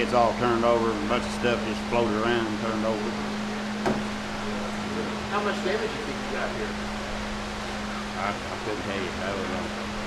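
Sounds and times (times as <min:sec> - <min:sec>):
floor fan running: 0:00.0 - 0:10.0
short knock: 0:03.8 - 0:04.1.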